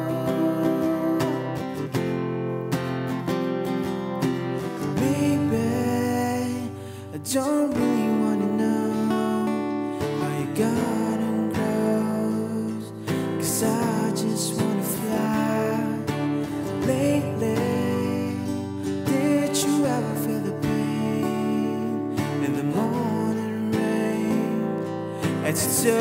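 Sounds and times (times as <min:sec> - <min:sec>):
man singing: 0:00.0 - 0:02.0, 0:04.6 - 0:26.0
acoustic guitar strumming: 0:00.0 - 0:26.0.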